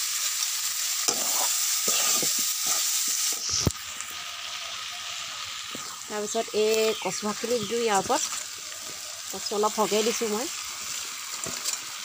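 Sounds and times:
curry sizzling in a wok: 0:00.0 - 0:12.0
scraping strokes in a wok: 0:00.0 - 0:12.0.

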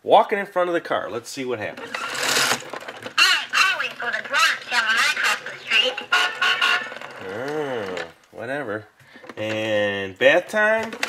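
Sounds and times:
talking toy voice: 0:03.2 - 0:08.2.

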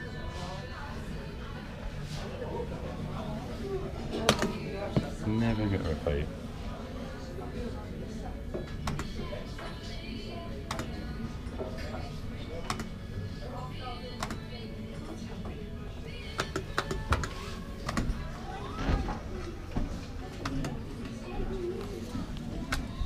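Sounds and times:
background chatter: 0:00.0 - 0:23.0.

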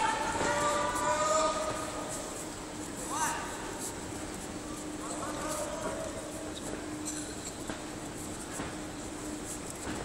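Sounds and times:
people shouting kiai: 0:00.0 - 0:01.9.

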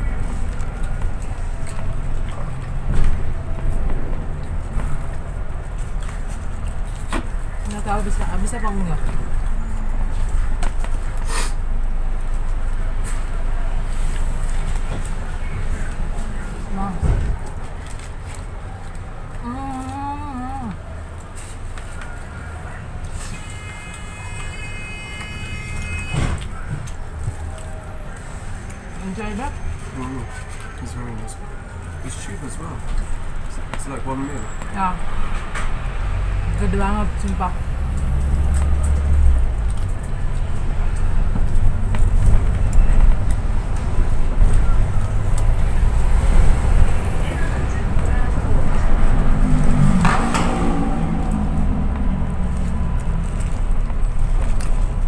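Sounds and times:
bus engine and road rumble: 0:00.0 - 0:55.0
air brake hiss: 0:11.2 - 0:11.6.

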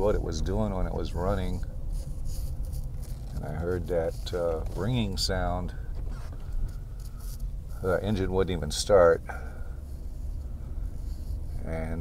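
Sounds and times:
car engine rumble: 0:00.0 - 0:12.0
road noise inside car: 0:00.0 - 0:12.0.

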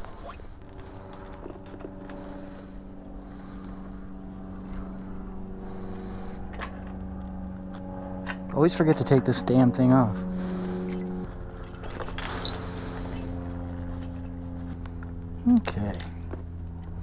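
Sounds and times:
steady low hum: 0:00.0 - 0:17.0
small clicks and scrapes: 0:00.2 - 0:05.1.

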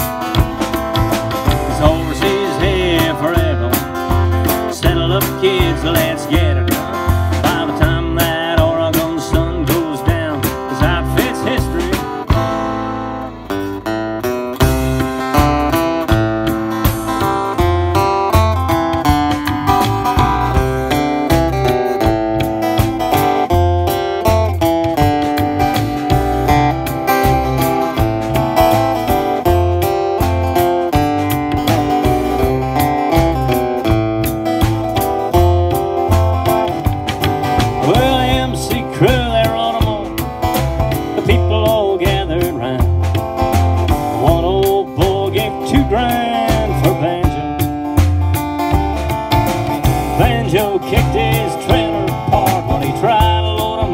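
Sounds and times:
drum kit steady beat: 0:00.0 - 0:53.9
strummed acoustic guitar: 0:00.0 - 0:53.9
upright double bass: 0:00.0 - 0:53.9.

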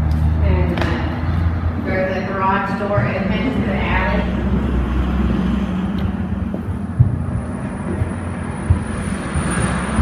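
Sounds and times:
low rumble: 0:00.0 - 0:10.0
dull thumps: 0:06.0 - 0:09.6.

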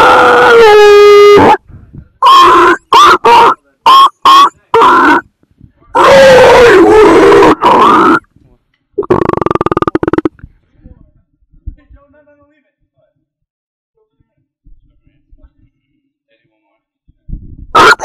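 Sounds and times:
person yelling distorted: 0:00.0 - 0:01.6, 0:02.2 - 0:05.2, 0:06.0 - 0:08.2, 0:17.8 - 0:18.0.

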